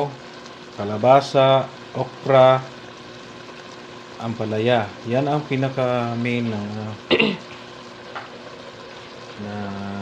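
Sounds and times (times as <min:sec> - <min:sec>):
broth simmering in a pot: 0:00.0 - 0:10.0.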